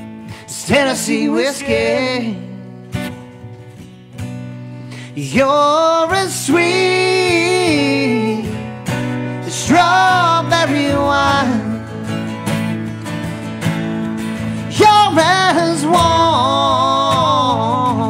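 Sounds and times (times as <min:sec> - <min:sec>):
man singing a country ballad: 0:00.0 - 0:03.1, 0:05.0 - 0:12.3, 0:14.4 - 0:18.0
strummed guitar: 0:00.0 - 0:18.0.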